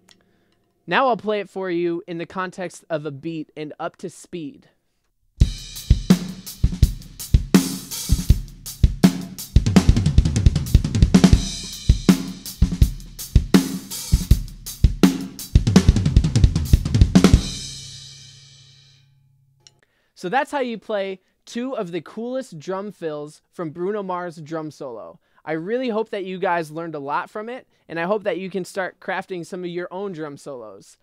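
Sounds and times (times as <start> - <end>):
drum kit playing: 5.4 - 19.0
drums and cymbals ringing: 5.4 - 19.0.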